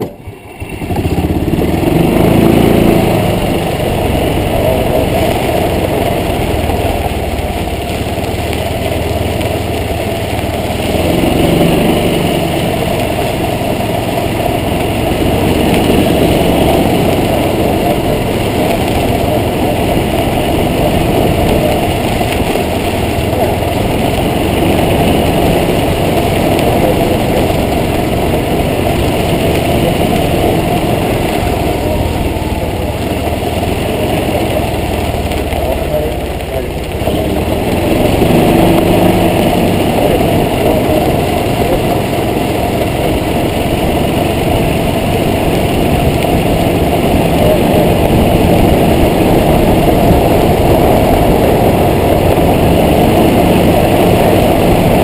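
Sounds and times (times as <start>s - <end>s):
golf cart engine running: 0.0s - 55.0s.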